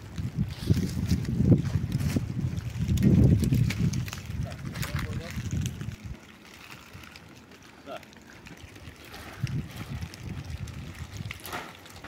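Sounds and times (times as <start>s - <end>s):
wind buffeting microphone: 0.0s - 7.5s, 8.2s - 12.0s.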